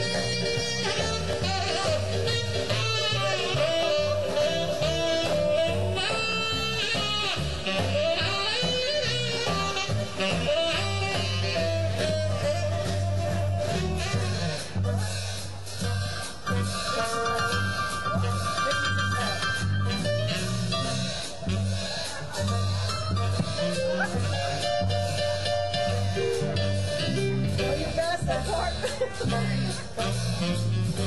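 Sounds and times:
swing band playing: 0.0s - 31.0s.

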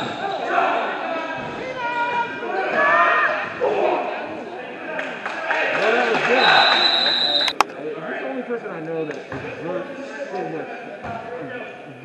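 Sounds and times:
spectators shouting in gym: 0.0s - 7.5s
referee whistle: 6.3s - 7.6s.

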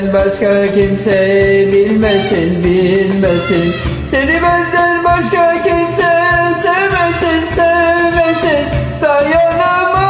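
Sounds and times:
karaoke backing track with beat: 0.0s - 10.0s
man singing: 0.0s - 10.0s.

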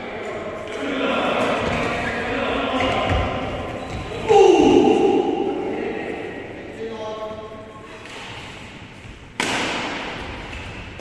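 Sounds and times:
loud sharp impact echoing in hall: 0.0s - 11.0s.

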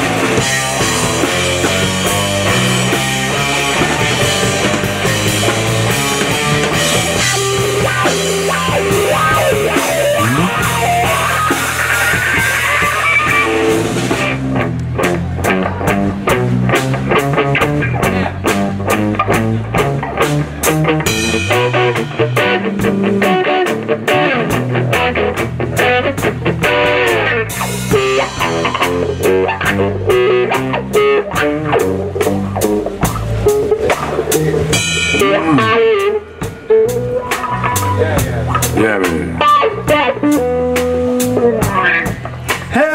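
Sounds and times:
drum kit: 0.0s - 42.9s
electric guitar lead: 0.0s - 42.9s
second guitar: 0.0s - 42.9s.

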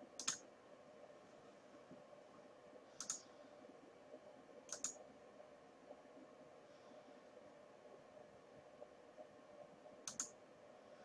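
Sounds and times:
faint steady hum: 0.0s - 11.0s
computer mouse clicking: 0.2s - 0.4s, 3.0s - 3.3s, 4.7s - 5.0s, 10.0s - 10.4s.

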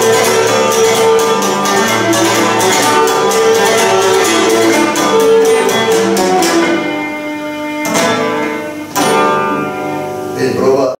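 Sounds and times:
lute strumming chords: 0.0s - 10.9s.

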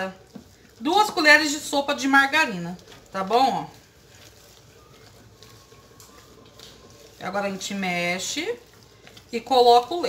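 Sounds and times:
spoon stirring in metal bowl: 0.0s - 10.0s.

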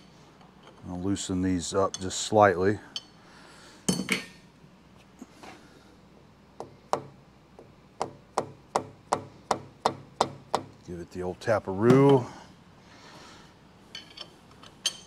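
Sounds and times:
hammer tapping on metal: 6.6s - 10.8s.

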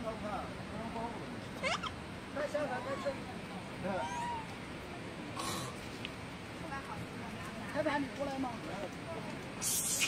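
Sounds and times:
infant monkey crying: 1.6s - 2.0s, 4.0s - 4.5s, 9.6s - 10.0s.

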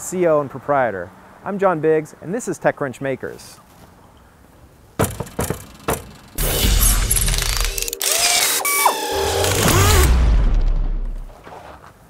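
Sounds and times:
dense machine-like noise: 5.0s - 11.2s
sharp mechanical clicks: 5.2s - 10.7s.

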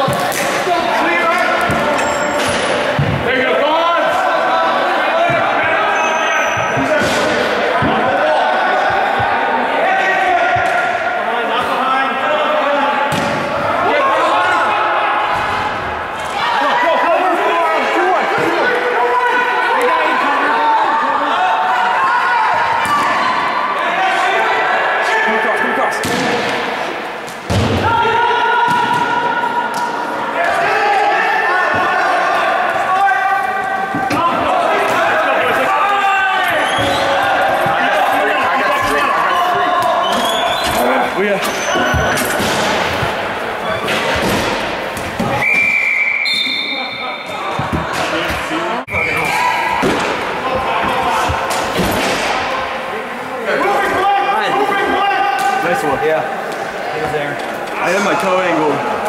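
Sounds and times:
players calling and shouting: 0.0s - 59.0s.

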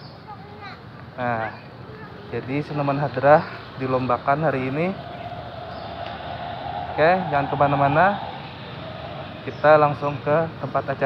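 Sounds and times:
outdoor background noise: 0.0s - 11.0s
faint steady hum: 3.1s - 11.0s.

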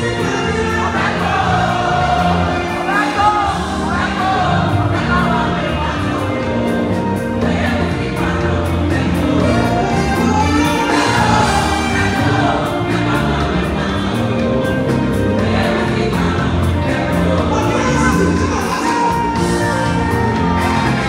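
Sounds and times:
choir singing: 0.0s - 21.0s
gospel band playing: 0.0s - 21.0s.

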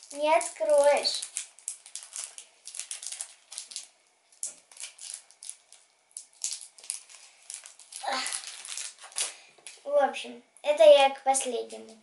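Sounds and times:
plastic wrapper crinkling: 0.0s - 9.8s.

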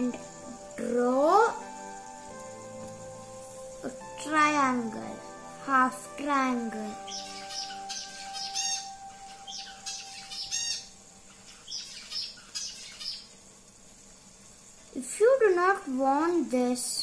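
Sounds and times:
birds chirping: 0.0s - 15.9s.

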